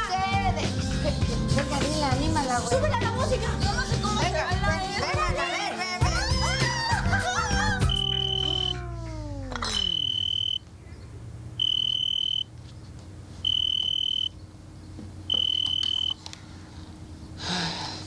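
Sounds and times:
electronic alarm beeps: 7.8s - 8.8s, 9.7s - 10.6s, 11.6s - 12.5s, 13.4s - 14.4s, 15.3s - 16.2s.

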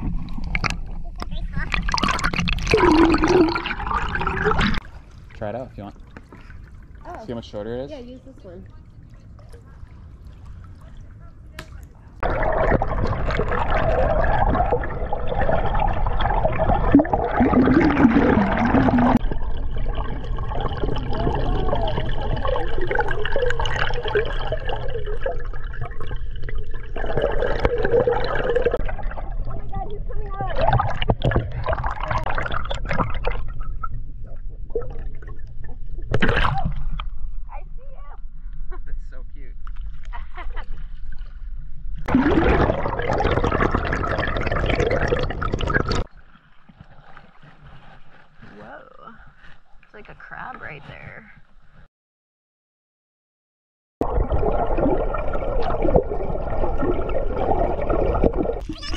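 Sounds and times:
muffled underwater water noise: 0.0s - 37.6s, 39.6s - 51.9s, 54.0s - 58.9s
deep rumble: 12.2s - 39.6s.

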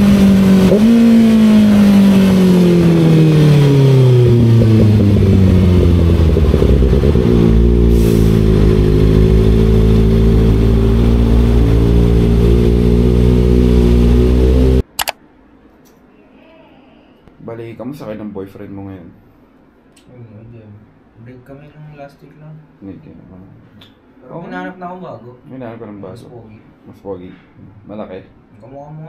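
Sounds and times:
motorcycle engine: 0.0s - 15.1s
single click: 14.8s - 15.2s.

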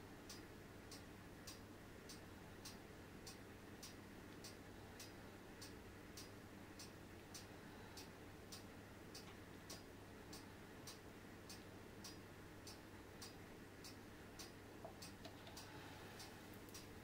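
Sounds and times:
low steady hum: 0.0s - 17.0s
faint ticking: 0.3s - 17.0s.

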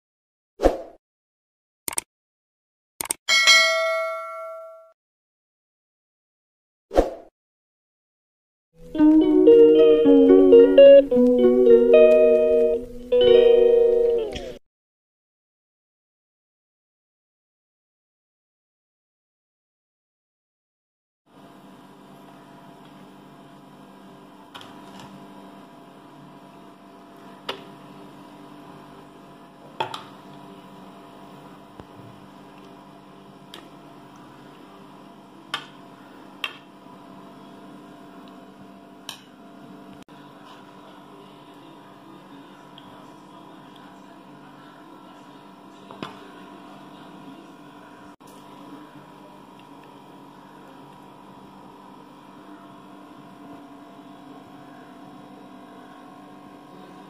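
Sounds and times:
quick clicks: 1.9s - 2.1s, 3.0s - 3.2s
bell ding: 3.3s - 5.0s.

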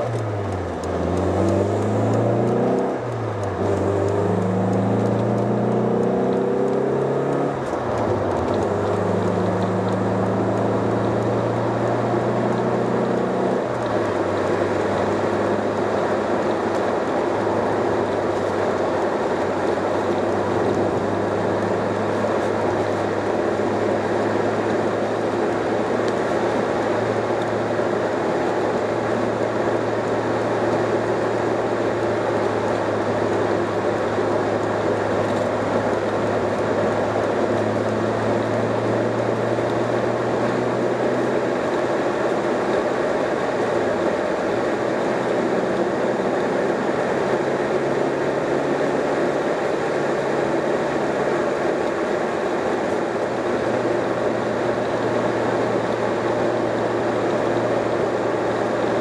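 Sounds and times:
car engine accelerating through gears: 0.0s - 59.0s
road noise: 0.0s - 59.0s.

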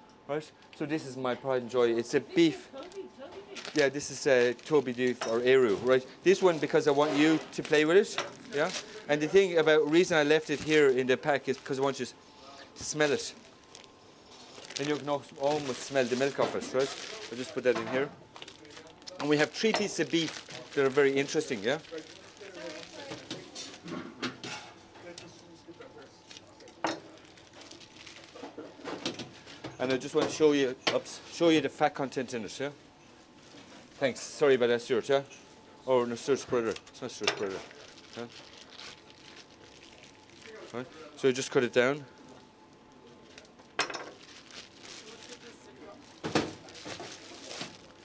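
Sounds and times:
restaurant kitchen hubbub: 0.0s - 48.0s.

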